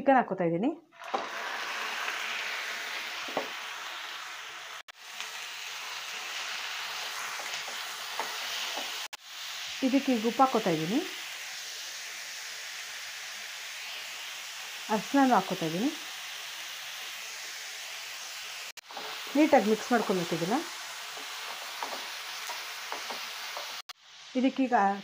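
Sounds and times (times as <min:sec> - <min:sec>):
chicken sizzling in a pan: 0:01.0 - 0:25.0
spatula stirring in a pan: 0:05.0 - 0:10.0, 0:18.8 - 0:23.9.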